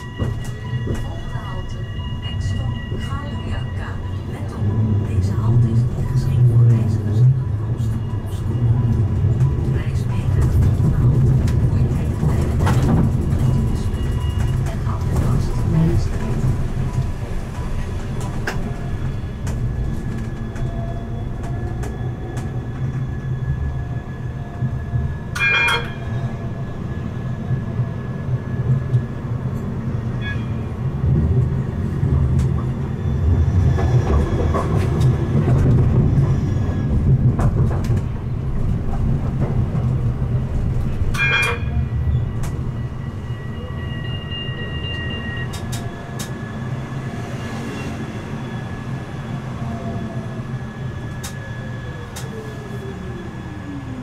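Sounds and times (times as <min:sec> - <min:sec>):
tram wheels rumbling on rails: 0:00.0 - 0:54.0.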